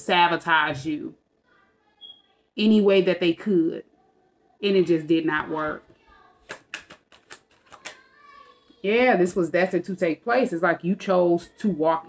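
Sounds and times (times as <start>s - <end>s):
cards clicking and snapping: 6.4s - 8.1s.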